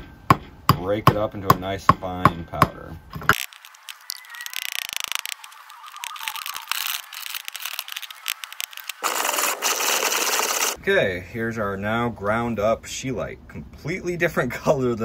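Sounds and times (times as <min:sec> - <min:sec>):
pestle grinding in stone mortar: 0:06.7 - 0:10.8.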